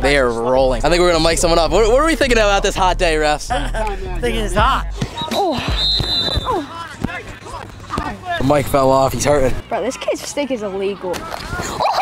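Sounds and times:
people shouting and calling: 4.2 - 8.5, 9.6 - 12.0.

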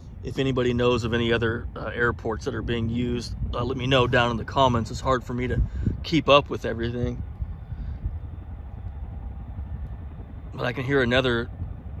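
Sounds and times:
helicopter engine rumble: 0.0 - 12.0.

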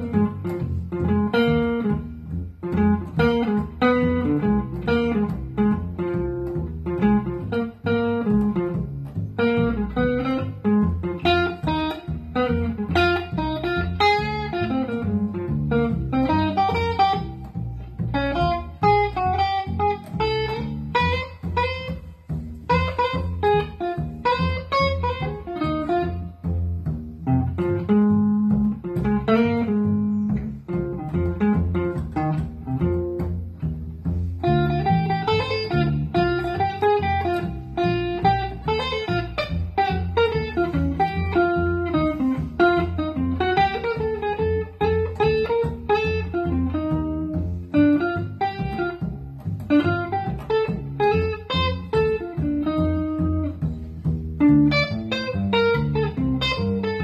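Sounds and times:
electric guitar picking single notes: 0.0 - 57.0
plucked double bass: 0.0 - 57.0.

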